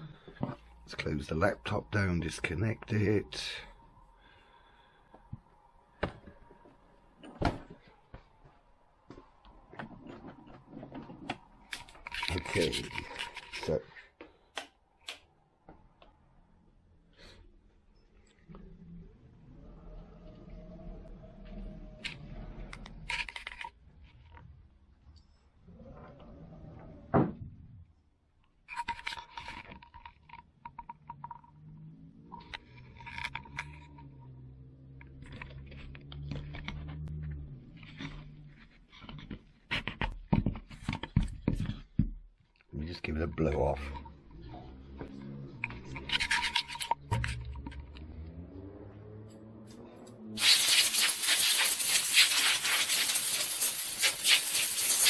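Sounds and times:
low hum: 43.7s - 50.4s.

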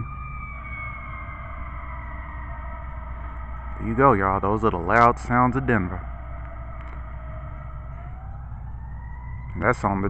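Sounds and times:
emergency siren wailing: 0.0s - 10.0s
low steady rumble: 0.0s - 10.0s.

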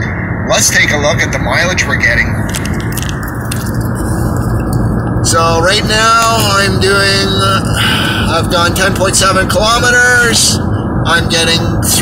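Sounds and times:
road and wind noise in car: 0.0s - 12.0s.

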